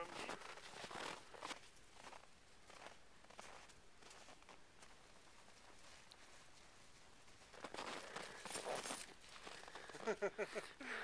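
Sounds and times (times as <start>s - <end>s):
snow crunching: 0.0s - 10.7s.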